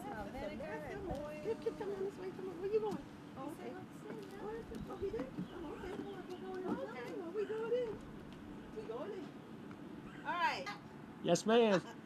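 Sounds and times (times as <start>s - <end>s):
footsteps on wooden steps: 4.0s - 8.4s.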